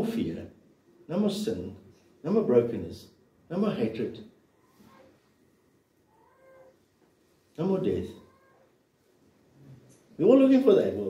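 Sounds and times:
faint pitched call: 0:04.6 - 0:05.3, 0:06.1 - 0:06.9, 0:08.1 - 0:08.8.

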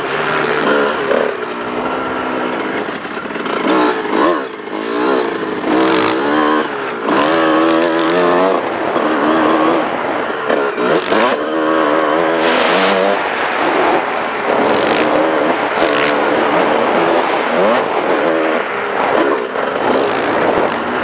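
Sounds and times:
dirt bike engine revving: 0:00.0 - 0:21.0
loud noise bursts: 0:08.0 - 0:21.0.

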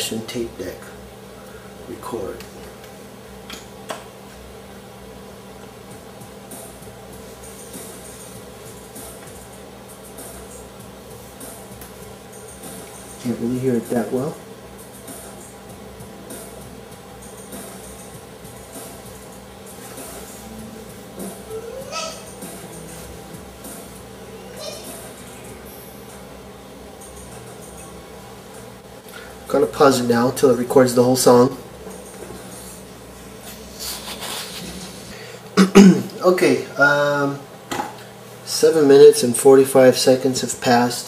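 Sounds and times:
faint vinyl record music: 0:00.0 - 0:41.0
man clearing his throat: 0:35.6 - 0:36.2.

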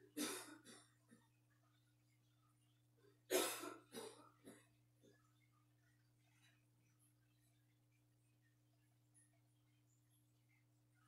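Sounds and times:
person coughing: 0:00.1 - 0:00.9, 0:03.3 - 0:04.7.

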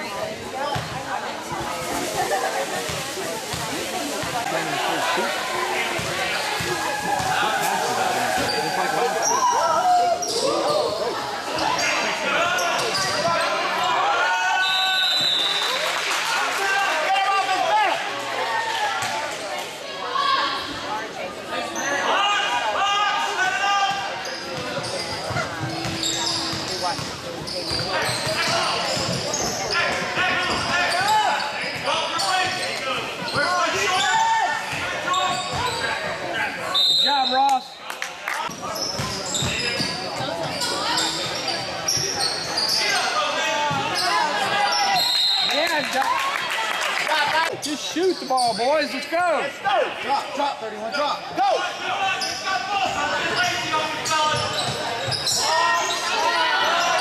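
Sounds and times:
shouting and chatter: 0:00.0 - 0:57.0.

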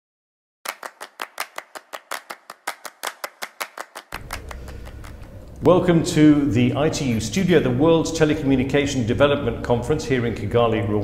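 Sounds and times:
rapid sharp claps: 0:00.7 - 0:05.3.

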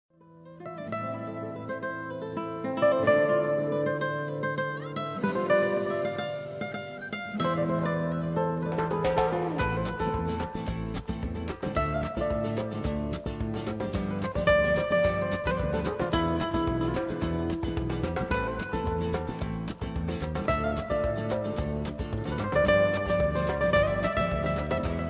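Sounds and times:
plucked string music: 0:00.1 - 0:25.0.

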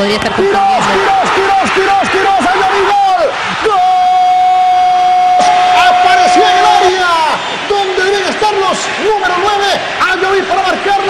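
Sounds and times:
commentator shouting goal: 0:00.0 - 0:11.0
stadium crowd noise: 0:00.0 - 0:11.0.

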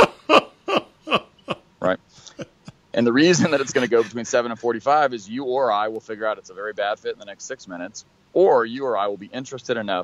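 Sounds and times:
man laughing: 0:00.0 - 0:04.2.

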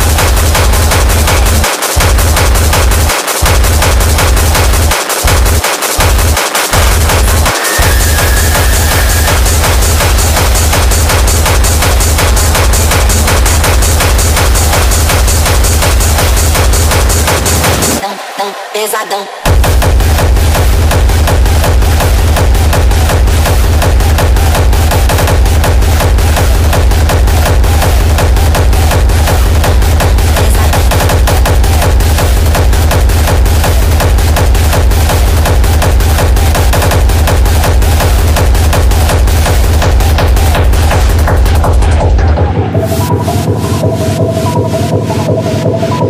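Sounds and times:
hard techno music: 0:00.0 - 0:46.0.

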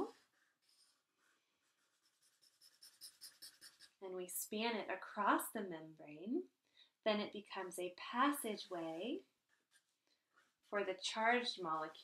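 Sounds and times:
marker drawing on paper: 0:00.0 - 0:04.0, 0:08.4 - 0:12.0.

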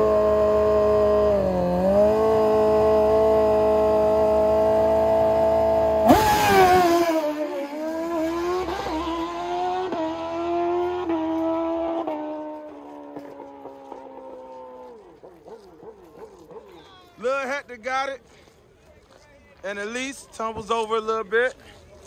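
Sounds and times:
motorcycle engine revving: 0:00.0 - 0:16.6.

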